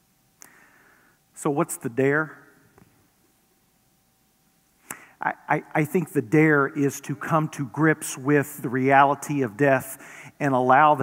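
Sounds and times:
faint steady hum: 0.0 - 11.0
man's voice: 5.2 - 11.0.

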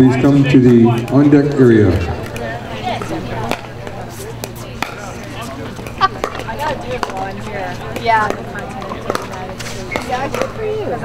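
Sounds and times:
faint spectator chatter: 0.0 - 11.0
paddles hitting plastic ball: 4.4 - 5.2, 5.8 - 10.6.

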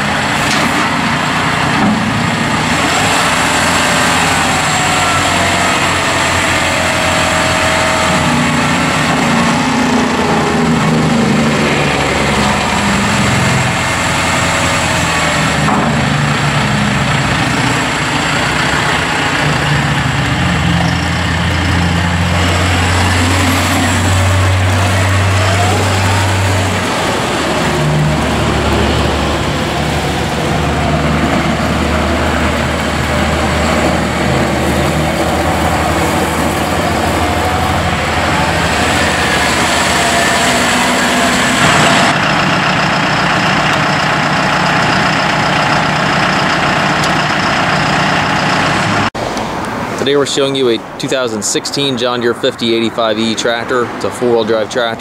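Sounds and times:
tractor diesel engine running: 0.0 - 55.0.

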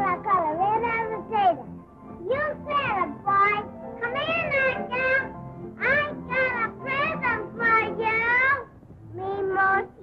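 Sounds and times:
young child singing: 0.0 - 10.0.

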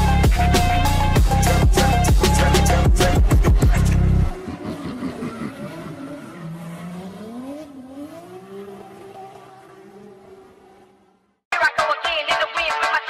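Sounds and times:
phonk beat: 0.0 - 4.0, 11.5 - 13.0
car engine pitch rising and falling: 1.5 - 11.4.

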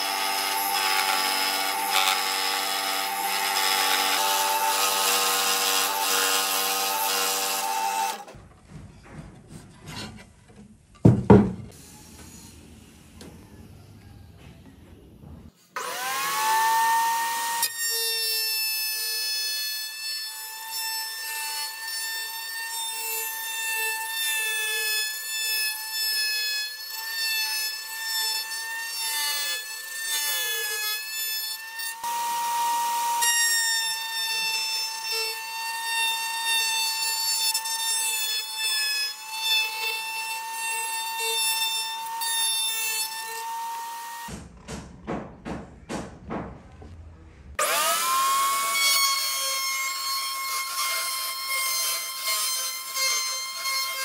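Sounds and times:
wood router whining: 0.0 - 8.4, 15.7 - 44.4, 47.6 - 54.0.

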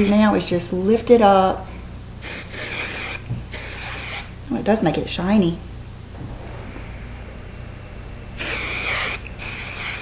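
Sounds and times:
hairspray hissing: 8.4 - 10.0.

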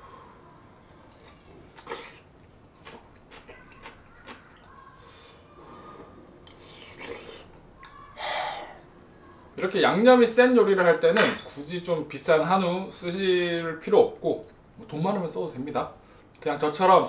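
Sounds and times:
soft chewing: 0.7 - 8.2.

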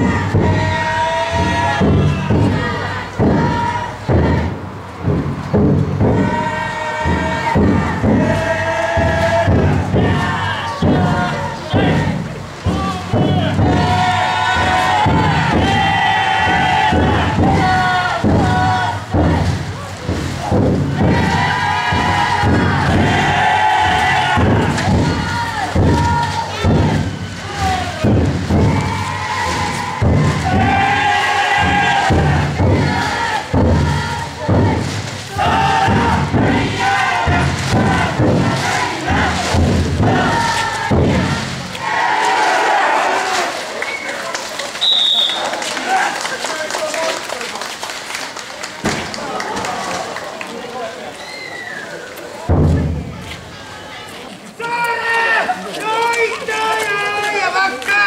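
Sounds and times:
drum thumps: 0.0 - 43.3, 52.5 - 53.5
crowd shouting a chant: 0.0 - 43.9.

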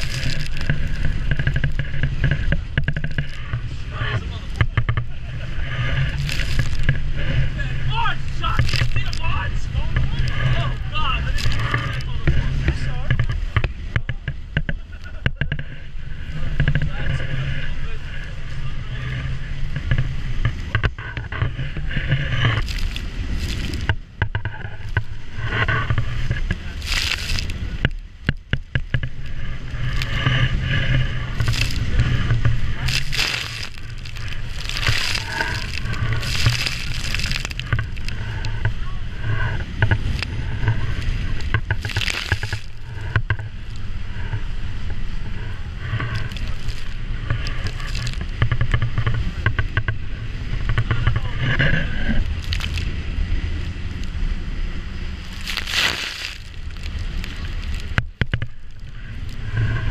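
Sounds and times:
spray and waves breaking: 0.0 - 14.0, 14.8 - 49.5, 51.8 - 53.8, 54.9 - 59.9
motorboat engine running hard: 0.0 - 59.9
wind buffeting microphone: 0.0 - 59.9.

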